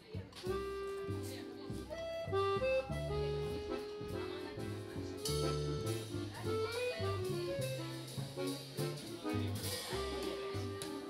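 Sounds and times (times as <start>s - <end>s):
double bass: 0.0s - 11.0s
jazz accordion melody: 0.0s - 11.0s.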